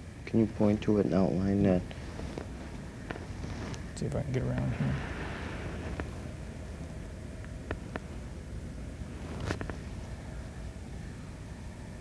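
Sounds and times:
recording hum and hiss: 0.0s - 12.0s.

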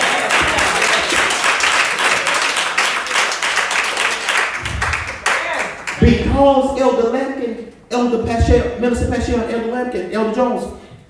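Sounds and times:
congregation applauding: 0.0s - 6.2s.

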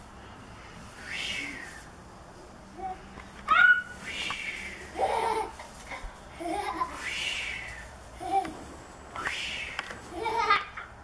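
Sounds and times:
toddler squealing: 3.5s - 4.0s.

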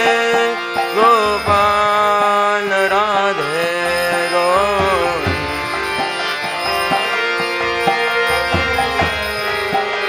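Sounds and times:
drum strokes: 0.0s - 2.3s, 3.9s - 10.0s
man singing devotional chant: 0.0s - 6.2s
steady drone: 0.0s - 10.0s.

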